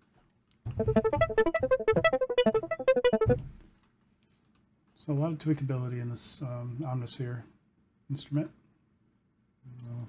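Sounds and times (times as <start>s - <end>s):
synth electric piano arpeggio: 0.8s - 3.4s.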